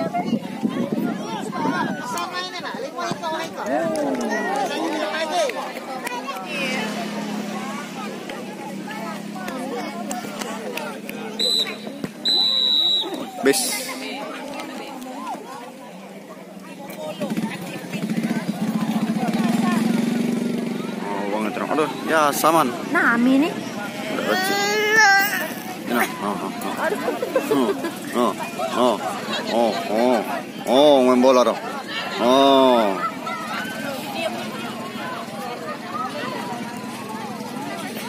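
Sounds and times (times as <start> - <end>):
spectators chattering and calling out: 0.0 - 38.0.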